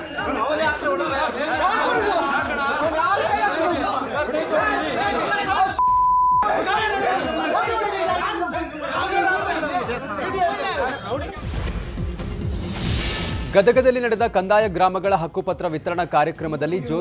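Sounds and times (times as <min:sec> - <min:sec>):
men arguing: 0:00.0 - 0:05.8, 0:06.4 - 0:11.4
censor bleep: 0:05.8 - 0:06.5.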